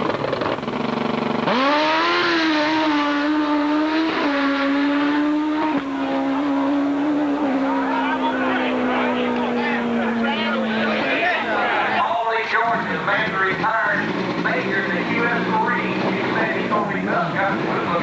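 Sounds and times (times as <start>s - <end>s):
drag-racing motorcycle engine: 0.0s - 18.0s.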